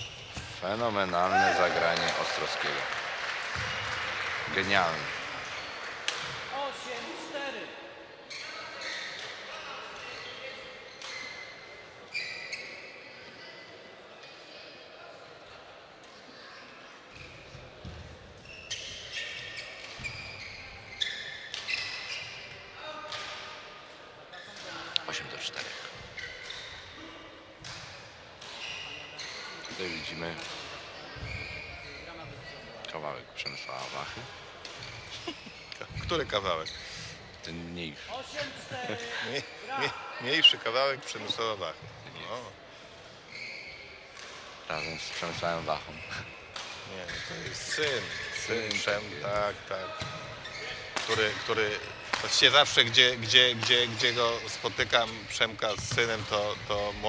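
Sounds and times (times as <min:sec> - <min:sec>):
voices in echoing hall: 0:00.0 - 0:57.0
rackets hitting shuttlecocks: 0:50.8 - 0:52.4.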